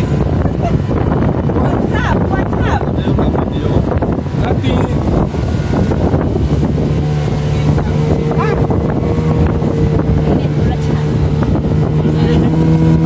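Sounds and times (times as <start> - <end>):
motorboat engine drone: 0.0 - 13.0
wind buffeting microphone: 0.0 - 13.0.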